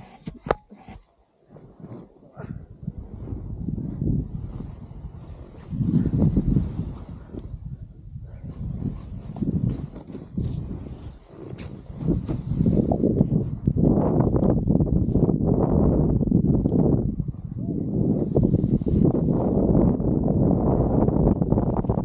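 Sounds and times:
wind on microphone: 0:00.0 - 0:22.0
snowboard scraping through snow: 0:01.4 - 0:02.3, 0:02.9 - 0:17.0, 0:17.9 - 0:22.0.

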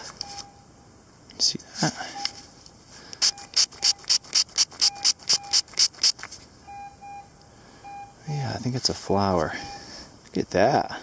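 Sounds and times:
faint short electronic beeps: 0:00.2 - 0:00.7, 0:01.9 - 0:02.5, 0:03.2 - 0:04.1, 0:04.8 - 0:05.6, 0:06.6 - 0:08.3.

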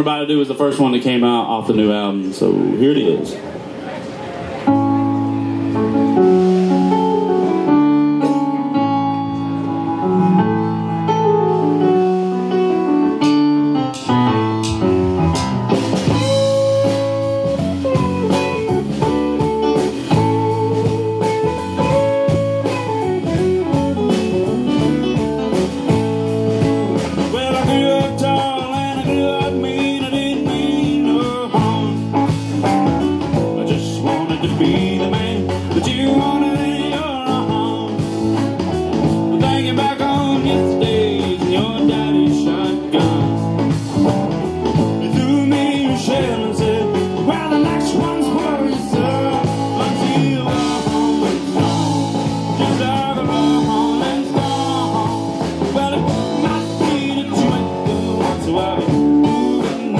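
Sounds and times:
live band playing: 0:00.0 - 0:59.9.

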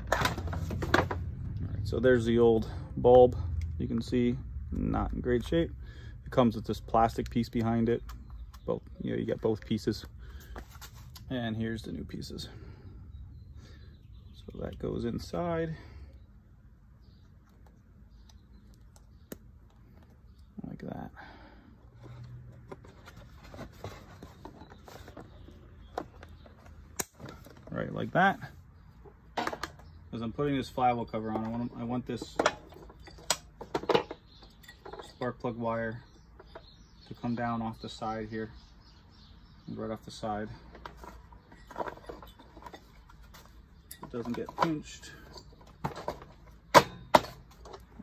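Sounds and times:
sharp plastic clacks: 0:25.9 - 0:27.6.

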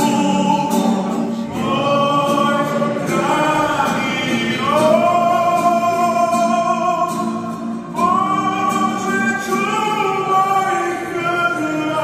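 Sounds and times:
acoustic guitar: 0:00.0 - 0:12.0
man singing: 0:00.0 - 0:12.0
voices singing a hymn: 0:00.0 - 0:12.0.

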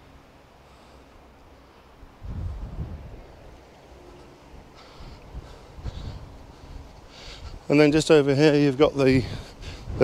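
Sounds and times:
wind buffeting microphone: 0:02.0 - 0:10.0.

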